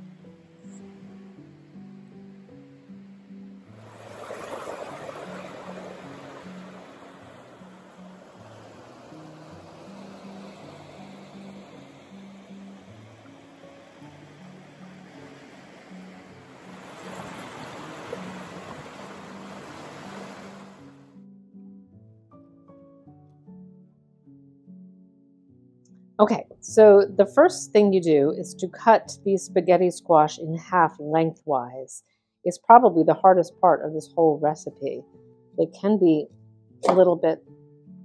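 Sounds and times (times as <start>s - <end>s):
background music plucked melody: 0.0s - 38.0s
creek water rushing: 0.1s - 21.0s.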